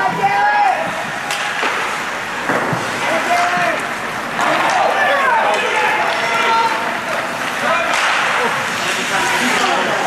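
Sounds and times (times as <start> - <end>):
rink noise rushing: 0.0 - 10.0.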